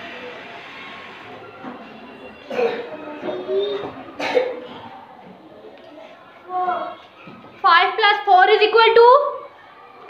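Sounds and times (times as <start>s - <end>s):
person coughing: 2.5s - 3.0s, 4.2s - 4.8s.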